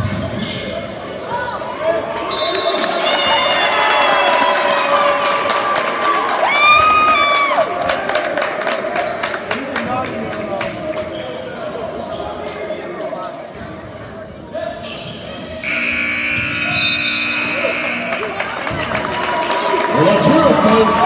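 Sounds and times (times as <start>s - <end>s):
crowd voices: 0.0s - 21.0s
scoreboard horn: 15.6s - 18.5s.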